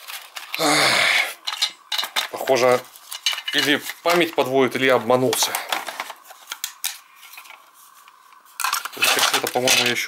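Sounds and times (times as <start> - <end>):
plastic cases clattering together: 1.4 - 7.6, 8.6 - 10.0.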